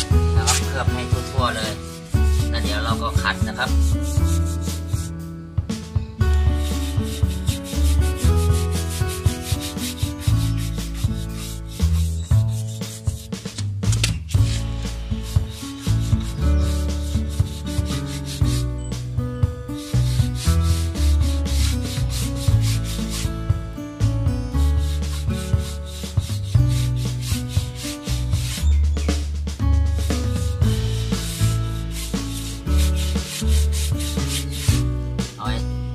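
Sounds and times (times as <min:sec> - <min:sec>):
brush scrubbing rubber tyre: 0:00.0 - 0:05.1, 0:06.5 - 0:13.7, 0:14.3 - 0:18.9, 0:19.8 - 0:23.3, 0:24.8 - 0:28.7, 0:30.7 - 0:34.9
background music with beat: 0:00.0 - 0:35.7.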